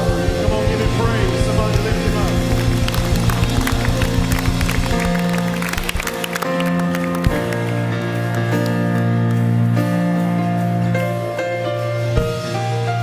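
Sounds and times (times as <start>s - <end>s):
steady drum beat: 0.0s - 6.3s
sustained keyboard chords: 0.0s - 13.0s.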